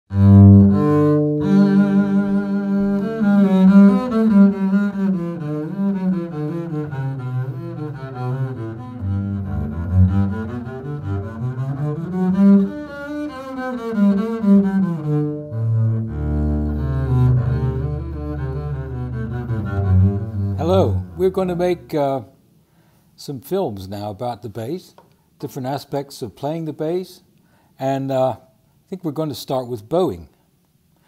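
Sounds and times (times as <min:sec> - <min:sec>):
bowed double bass: 0:00.1 - 0:22.0.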